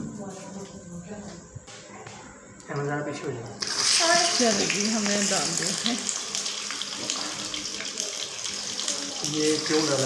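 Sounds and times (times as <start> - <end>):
chicken sizzling in hot oil: 3.6 - 10.0.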